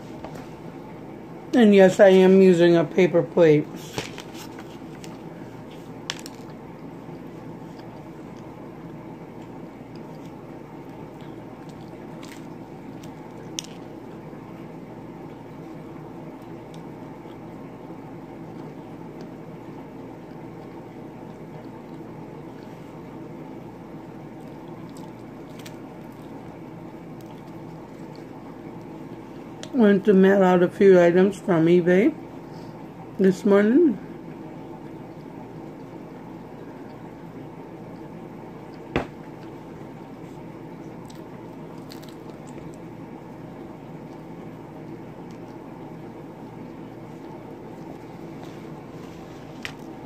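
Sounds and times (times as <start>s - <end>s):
steady background hum: 0.0s - 50.0s
wet chewing sounds: 3.8s - 14.4s, 16.4s - 17.6s, 18.4s - 23.1s, 24.1s - 29.8s, 37.9s - 45.7s, 46.4s - 50.0s.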